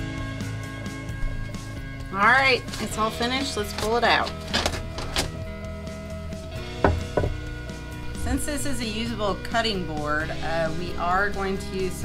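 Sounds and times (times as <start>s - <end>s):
background music: 0.0s - 12.0s
sharp wooden knocks: 6.8s - 7.4s.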